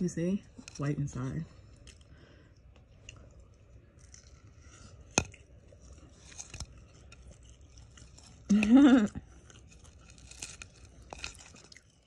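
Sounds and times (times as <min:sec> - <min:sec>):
chewing crispy food: 0:00.2 - 0:12.0.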